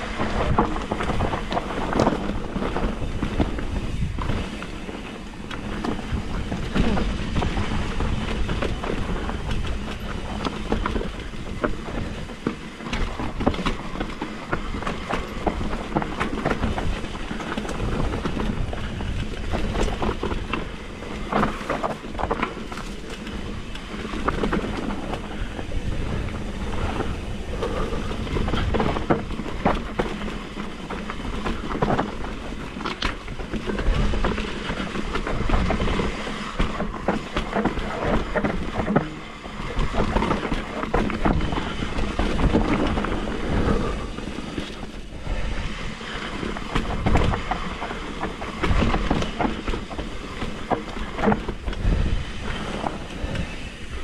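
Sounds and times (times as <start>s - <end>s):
bike rattling over bumps: 0.0s - 54.0s
bike tyres rumbling on dirt: 0.0s - 54.0s.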